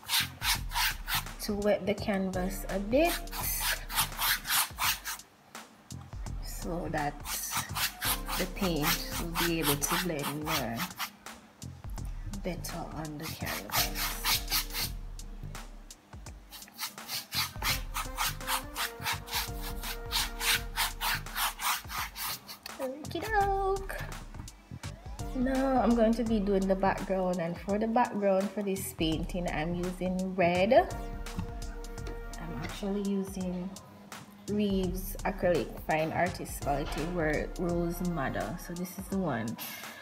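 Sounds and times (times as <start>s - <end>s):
paintbrush scrubbing on canvas: 0.0s - 1.4s, 3.0s - 5.2s, 7.0s - 11.2s, 13.1s - 14.9s, 16.5s - 22.7s.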